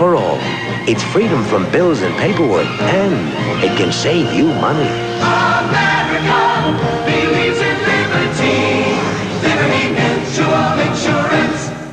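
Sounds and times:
musical backing: 0:00.0 - 0:11.9
choir singing jingle: 0:02.5 - 0:11.9.

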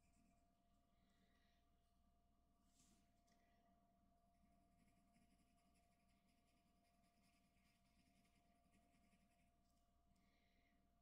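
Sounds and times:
pencil scratching on paper: 0:04.8 - 0:09.6.

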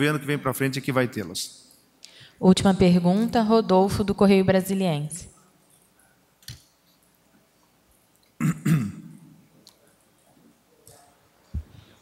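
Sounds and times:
person clearing throat: 0:08.4 - 0:09.4.

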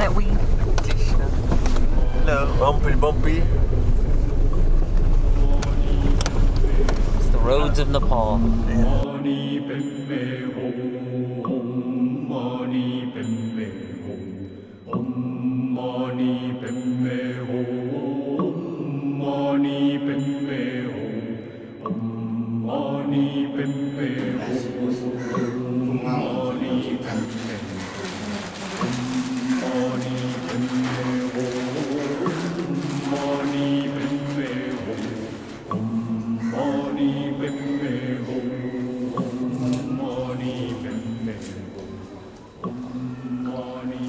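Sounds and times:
low steady chanting: 0:00.0 - 0:44.0
low-pitched mantra chanting: 0:24.2 - 0:38.2.

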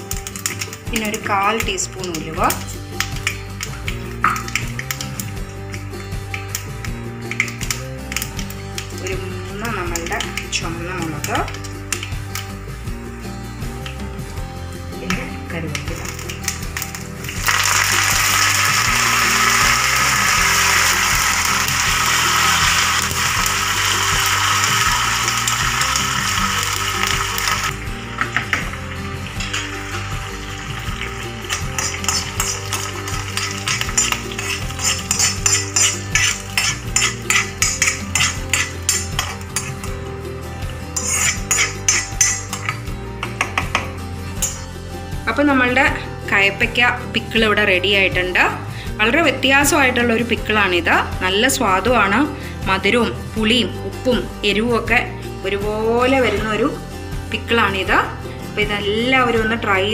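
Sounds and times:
hot oil sizzling in a pan: 0:00.0 - 0:12.4, 0:15.8 - 0:42.8
background music: 0:00.0 - 0:59.9
spoon clinking against pot: 0:31.4 - 0:40.0, 0:41.0 - 0:44.7.

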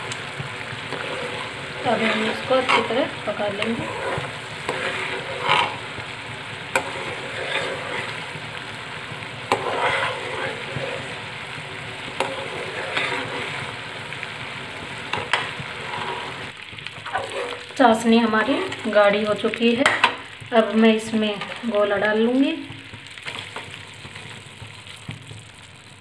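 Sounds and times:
metal ladle scraping a pan: 0:00.0 - 0:14.2, 0:14.8 - 0:22.0
syrup boiling and bubbling: 0:00.0 - 0:26.0.

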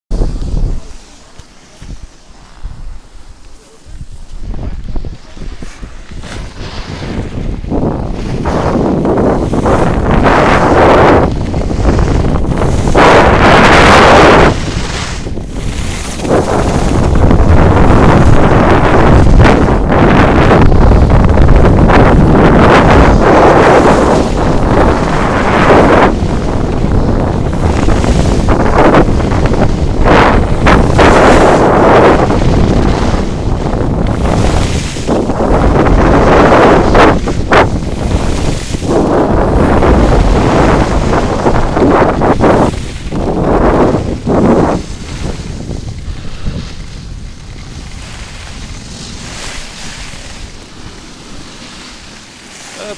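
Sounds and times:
wind buffeting microphone: 0:00.1 - 0:52.9.

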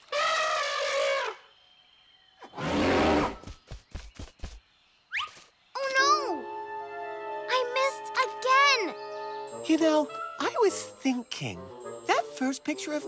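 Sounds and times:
cartoon elephant trumpeting: 0:00.1 - 0:01.4.

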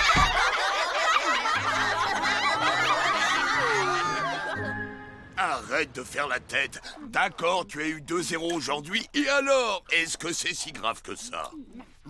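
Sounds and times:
children laughing: 0:00.0 - 0:05.8.

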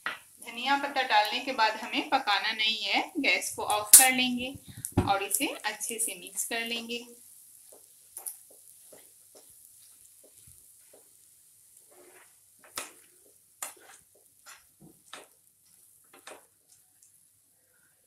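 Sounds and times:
faint food sizzle: 0:00.0 - 0:18.0
spatula scraping a pan: 0:07.7 - 0:16.8.

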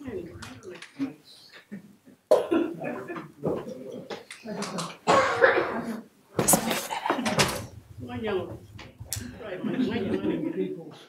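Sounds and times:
indistinct voices: 0:00.0 - 0:10.5
person coughing: 0:05.1 - 0:06.0.

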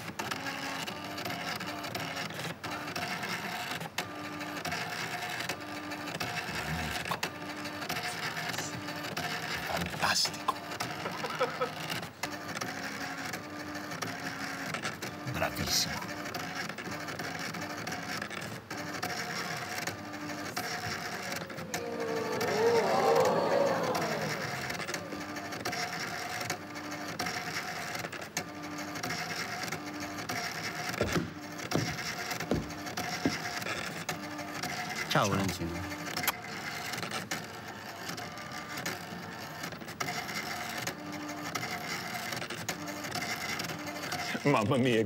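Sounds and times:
dot-matrix printer humming: 0:00.0 - 0:45.0
group of voices: 0:20.5 - 0:25.6.

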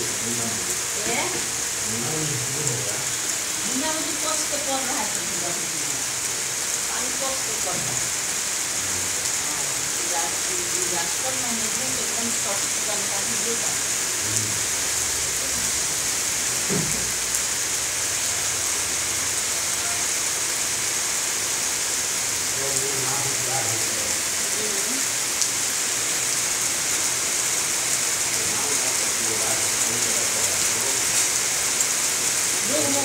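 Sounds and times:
rain falling on standing water: 0:00.0 - 0:33.0.

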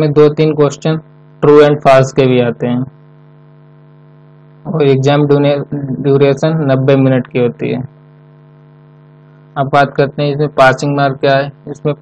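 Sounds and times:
man speaking: 0:00.0 - 0:03.0, 0:04.7 - 0:07.9, 0:09.6 - 0:12.0
electrical mains hum: 0:00.0 - 0:12.0.

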